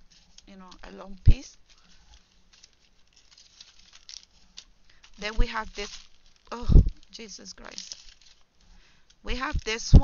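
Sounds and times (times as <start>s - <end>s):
paper and cellophane rustling: 0.0s - 10.0s.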